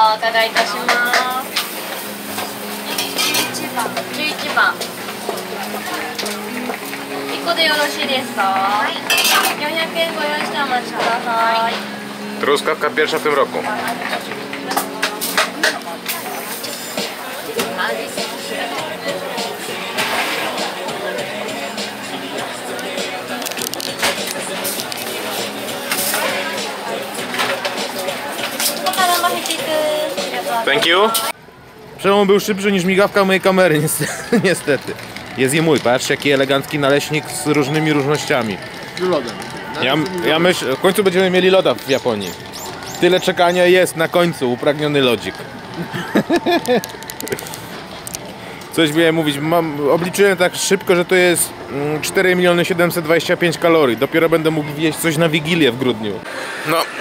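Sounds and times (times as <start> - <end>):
people talking indistinctly: 0.0 - 31.4, 32.0 - 57.0
background music: 0.0 - 57.0
voices: 0.0 - 57.0
metal spoons clinking in trays: 2.4 - 4.1, 9.1 - 9.6.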